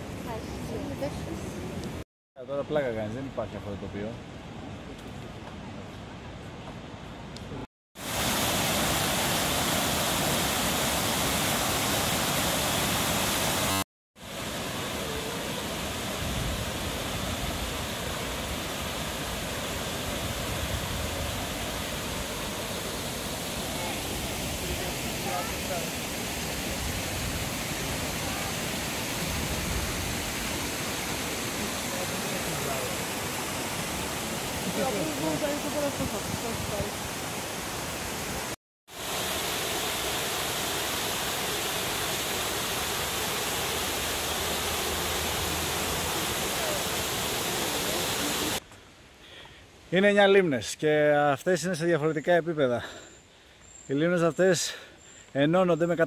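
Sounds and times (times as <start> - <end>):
waterfall rushing: 8.0 - 48.6.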